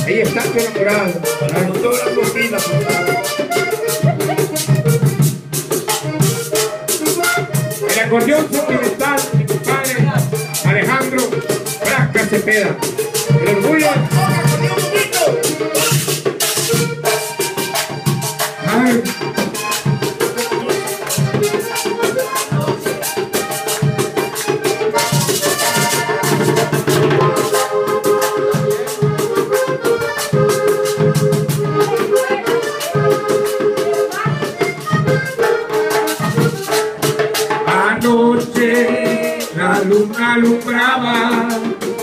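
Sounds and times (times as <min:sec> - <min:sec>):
button accordion melody: 0:00.0 - 0:42.0
drum: 0:00.0 - 0:42.0
rattle percussion: 0:00.0 - 0:42.0.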